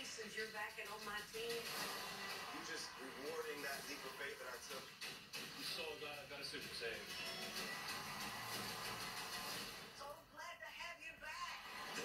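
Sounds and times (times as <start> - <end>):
television music: 0.0 - 12.0.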